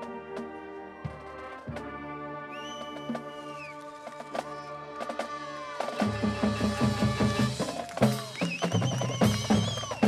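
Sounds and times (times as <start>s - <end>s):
marching band sustained chords: 0.0s - 8.4s.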